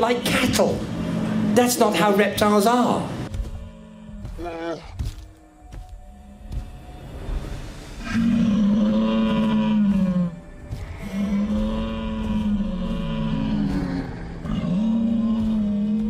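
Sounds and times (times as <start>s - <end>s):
low dinosaur calls: 8.0s - 16.0s.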